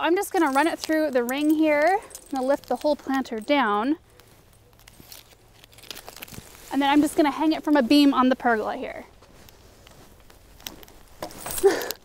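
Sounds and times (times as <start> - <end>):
metal chain clicking: 0.0 - 6.1.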